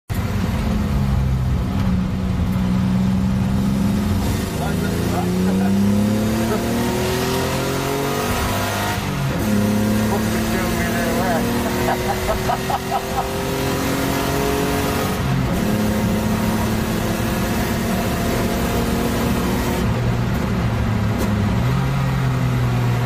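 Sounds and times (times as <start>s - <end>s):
car engine accelerating: 0.1s - 23.0s.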